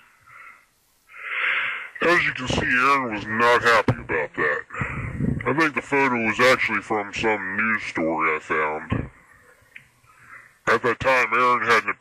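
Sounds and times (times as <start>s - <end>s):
person inhaling through mouth: 0.2s - 2.0s
person speaking: 2.0s - 9.2s.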